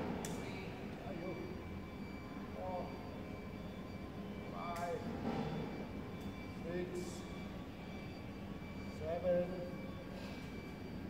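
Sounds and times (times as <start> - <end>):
faint constant tones: 0.0 - 11.0
mechanical hum: 0.0 - 11.0.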